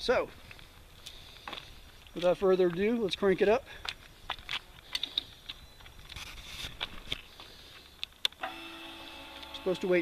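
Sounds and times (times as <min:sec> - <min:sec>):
fuel pump electric whine: 0:08.4 - 0:10.0.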